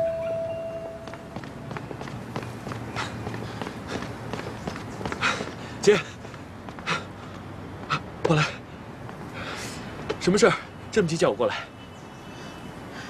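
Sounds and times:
held music note: 0.0s - 1.4s
footsteps on paving: 0.8s - 9.3s.

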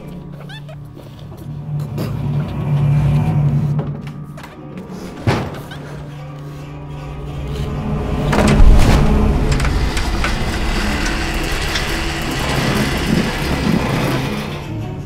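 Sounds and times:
rumbling drone with low hum: 0.0s - 4.3s, 6.2s - 15.0s
hard impact hit: 6.6s - 14.3s.

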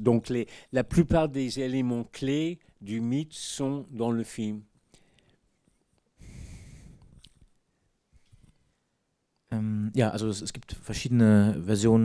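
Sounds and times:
breath into microphone: 4.9s - 5.4s, 6.2s - 7.4s.

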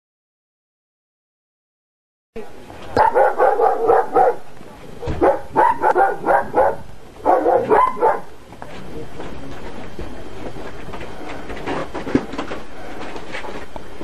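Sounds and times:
steady noise: 2.4s - 14.0s
dog barking: 3.0s - 8.4s.

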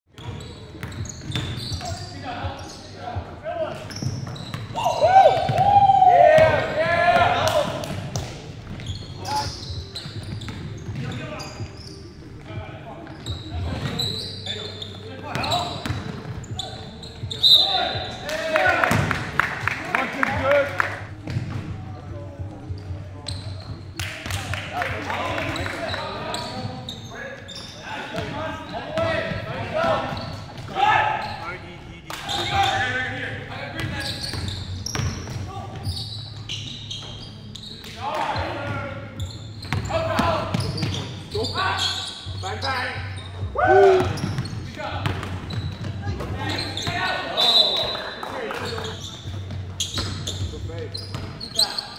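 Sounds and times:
players calling out: 32.3s - 49.1s
basketball bouncing on wooden floor: 44.0s - 46.5s.

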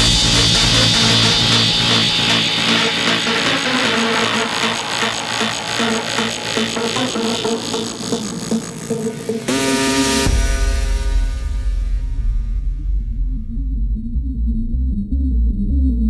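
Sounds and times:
hard dance music: 0.0s - 11.7s
rising noise sweep: 0.0s - 11.8s
deep sustained bass: 0.0s - 16.0s.

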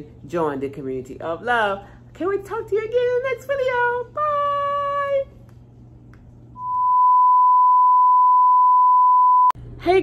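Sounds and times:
steady beep test tone: 6.6s - 9.6s.

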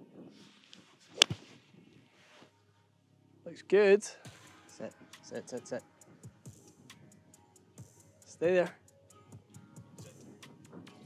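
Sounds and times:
golf club striking ball: 1.2s - 1.6s.

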